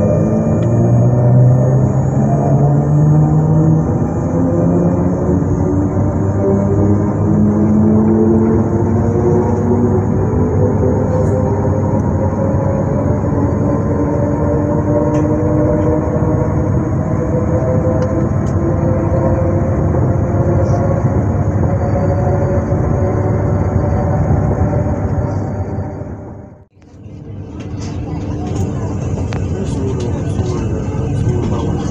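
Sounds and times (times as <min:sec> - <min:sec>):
electric train motors whining: 0:00.0 - 0:31.9.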